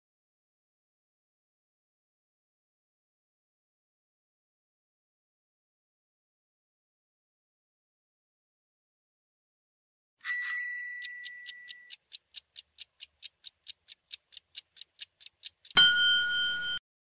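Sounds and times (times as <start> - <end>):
loud ringing bell: 10.2 - 11.7, 15.8 - 16.8
chime: 10.2 - 11.9, 15.8 - 16.8
timer ticking: 10.2 - 16.8.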